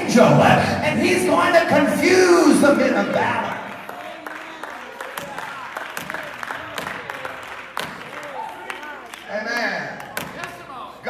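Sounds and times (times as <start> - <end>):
hand claps: 3.5 - 10.8.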